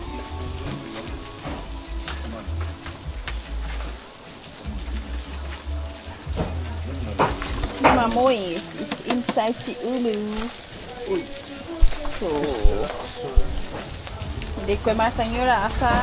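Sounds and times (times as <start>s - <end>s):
hot stones hissing and crackling: 0.0s - 16.0s.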